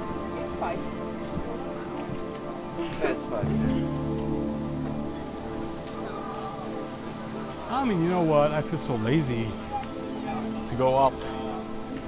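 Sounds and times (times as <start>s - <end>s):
faint steady hiss: 0.0s - 12.0s
music with long held notes: 0.0s - 12.0s.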